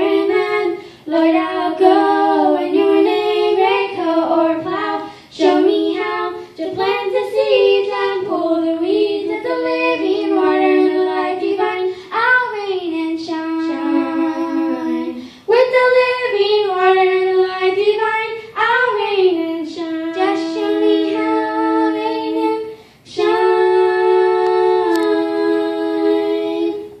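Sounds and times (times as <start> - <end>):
girls singing gospel in harmony: 0.0 - 27.0.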